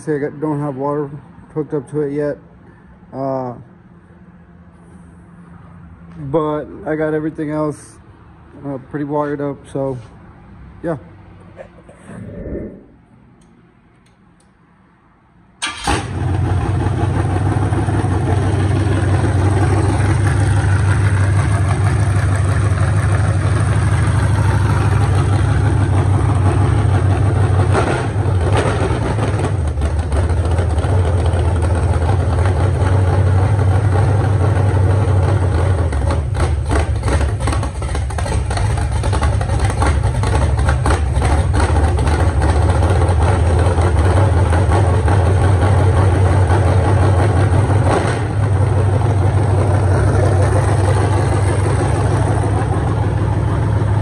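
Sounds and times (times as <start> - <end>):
engine starting and idling choppily: 15.6 - 54.0.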